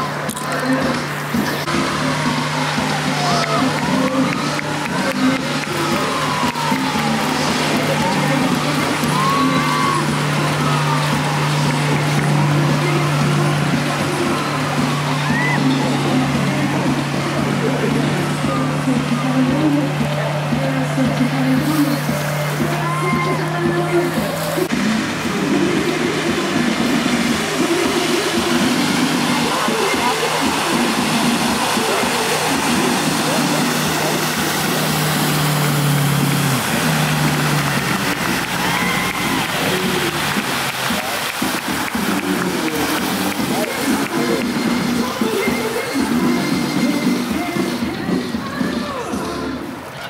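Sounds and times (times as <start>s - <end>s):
boat engine running: 0.0s - 50.0s
voices of onlookers: 0.0s - 50.0s
water noise: 0.0s - 50.0s.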